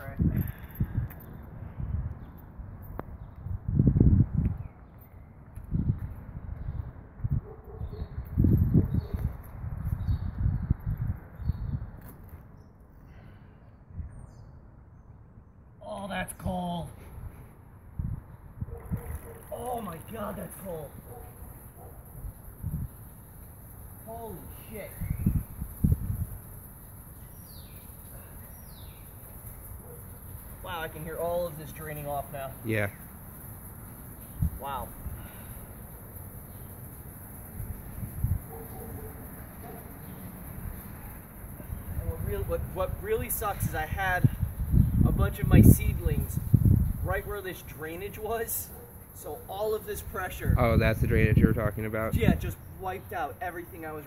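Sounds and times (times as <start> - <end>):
faint birds chirping: 0.0 - 45.4.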